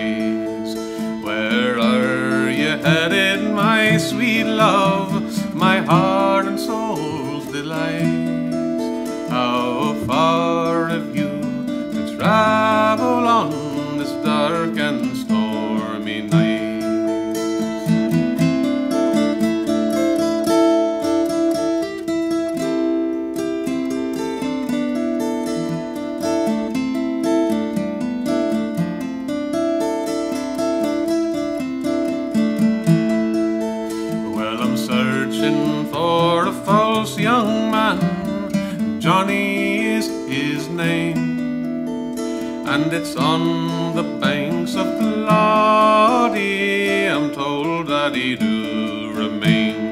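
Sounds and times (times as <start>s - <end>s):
man singing: 0.0s - 17.4s, 34.0s - 41.4s, 42.4s - 49.9s
acoustic guitar picking: 0.0s - 49.9s.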